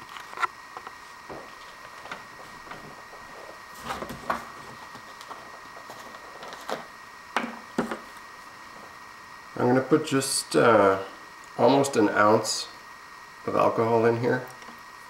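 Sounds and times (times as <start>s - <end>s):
faint room hum: 0.0s - 15.0s.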